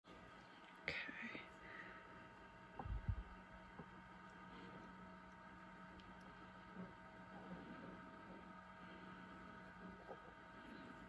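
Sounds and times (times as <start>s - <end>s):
faint steady hum: 0.1s - 11.0s
person whispering: 0.8s - 1.6s.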